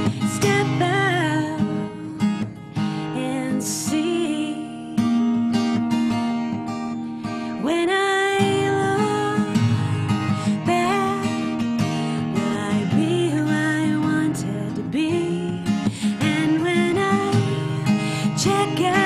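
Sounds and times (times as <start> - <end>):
woman singing: 0.0 - 5.2, 7.5 - 19.0
strummed acoustic guitar: 0.0 - 19.0.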